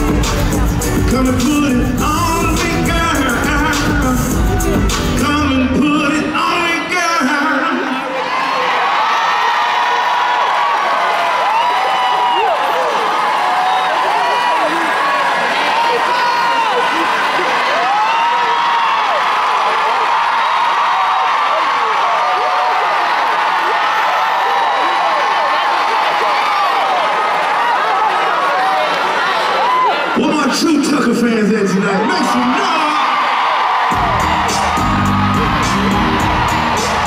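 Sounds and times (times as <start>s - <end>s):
concert crowd cheering: 0.0s - 37.0s.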